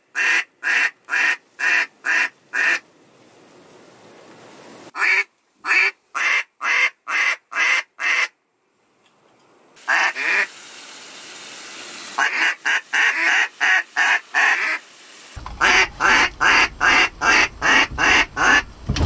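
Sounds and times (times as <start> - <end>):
wind hiss: 0.0 - 6.2, 8.8 - 19.0
duck call quacks: 0.1 - 2.8, 5.0 - 8.4, 9.9 - 10.5, 12.2 - 14.8, 15.6 - 18.7.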